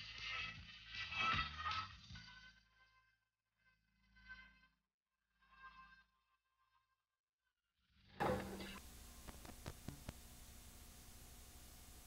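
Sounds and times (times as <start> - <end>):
low hum: 8.2 - 12.0
tape hiss: 8.2 - 12.0.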